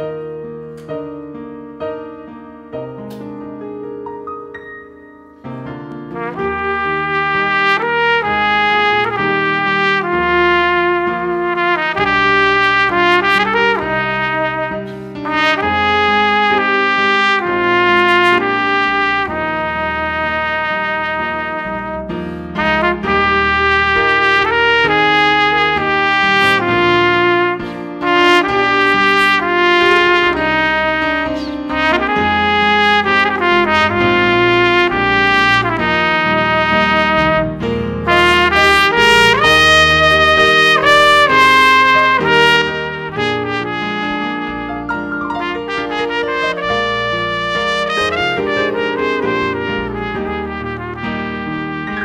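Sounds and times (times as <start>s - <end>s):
digital piano accompaniment: 0.0s - 52.0s
trumpet melody: 4.8s - 52.0s.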